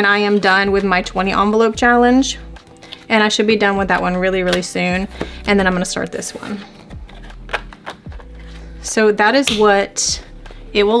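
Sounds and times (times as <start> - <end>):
card rustling: 4.5 - 8.8
card clicking onto binder rings: 6.8 - 8.4.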